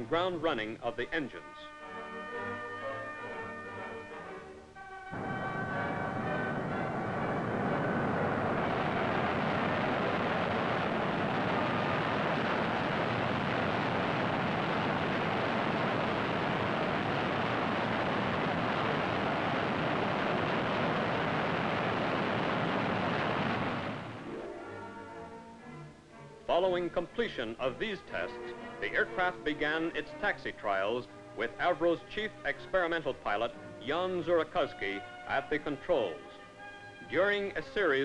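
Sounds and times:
jet engine loud rushing noise: 5.1s - 24.3s.

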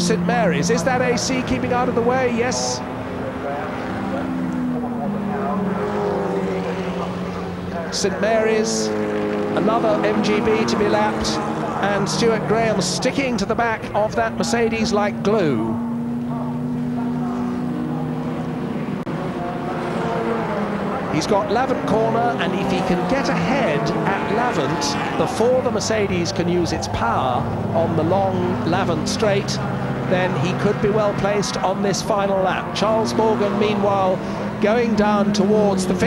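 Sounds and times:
racing car engines passing: 0.0s - 36.0s.

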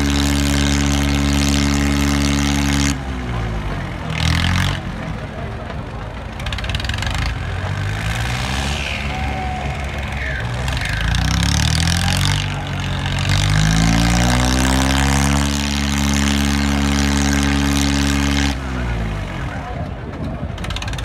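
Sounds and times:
diesel tractor engine revving: 0.0s - 21.0s.

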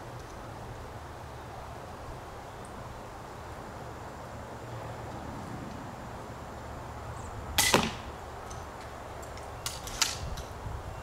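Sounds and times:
crossbow bolt striking foam target: 7.6s - 8.1s.

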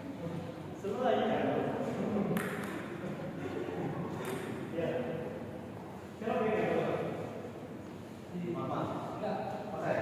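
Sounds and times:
table tennis ball click: 2.4s - 2.8s, 4.2s - 4.6s.

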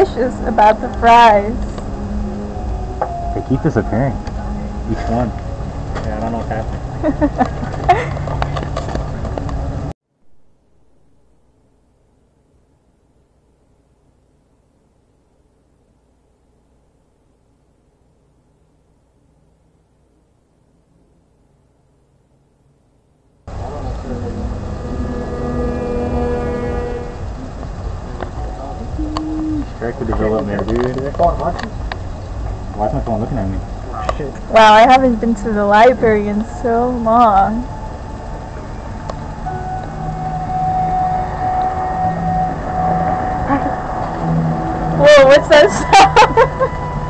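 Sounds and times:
steady hum: 0.0s - 30.1s, 33.4s - 47.0s
street ambience with low rumble: 0.0s - 47.0s
steady tone: 23.5s - 29.0s, 36.6s - 47.0s.

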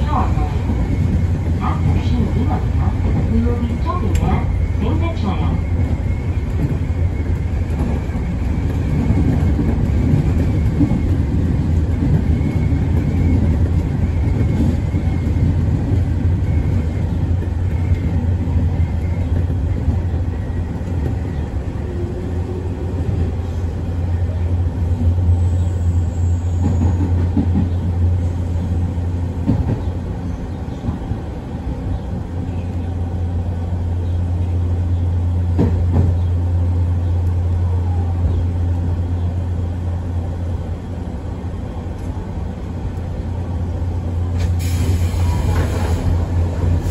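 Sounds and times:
train motors and wheels rumbling: 0.0s - 46.9s.

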